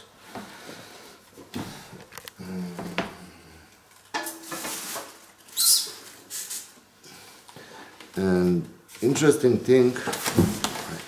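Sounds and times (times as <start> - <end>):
scraping rustle: 4.4 - 6.8
packing material squeaking: 5.5 - 6.7.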